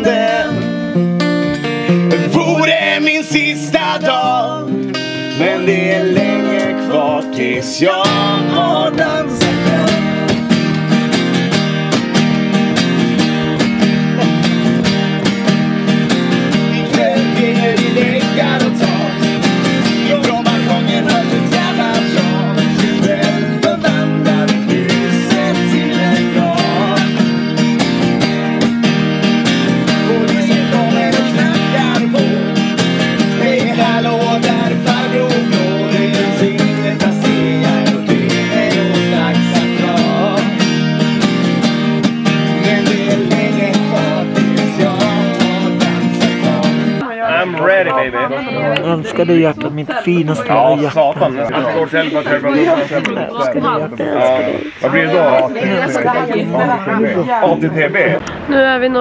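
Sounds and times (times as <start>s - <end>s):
man singing: 0.0s - 1.0s, 1.8s - 11.2s, 16.4s - 28.6s, 29.6s - 58.2s
acoustic guitar strumming: 0.0s - 59.0s.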